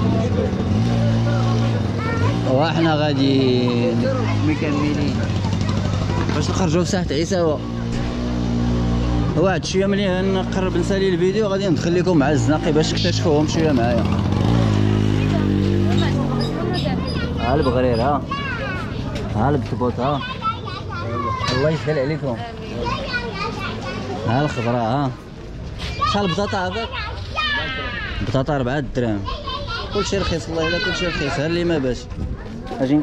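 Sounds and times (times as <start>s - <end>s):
vehicle engine hum: 0.0s - 25.8s
crowd chatter: 0.0s - 33.0s.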